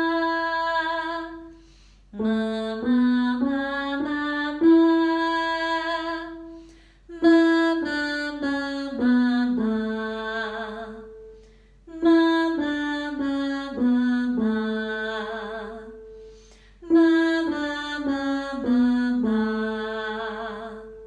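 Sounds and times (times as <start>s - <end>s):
woman singing vocal exercise: 0.0s - 1.6s, 2.2s - 11.2s, 11.9s - 16.1s, 16.8s - 21.0s.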